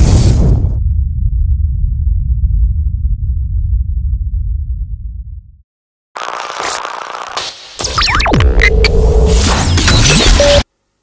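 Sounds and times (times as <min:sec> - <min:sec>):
deep rumbling drone: 0:00.4 - 0:05.6.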